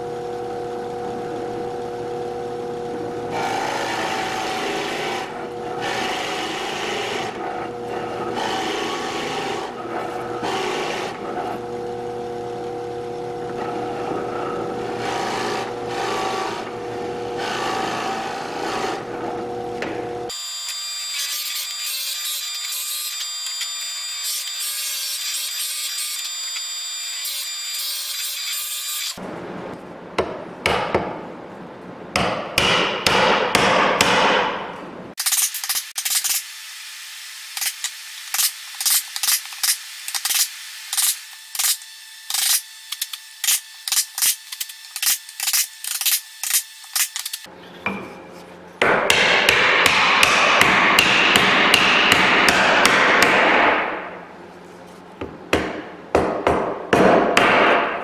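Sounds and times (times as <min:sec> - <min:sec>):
drill press boring into wood: 0:00.0 - 0:21.8
mallet striking chisel: 0:32.2 - 0:34.6, 0:47.8 - 0:53.9, 0:55.2 - 0:58.0.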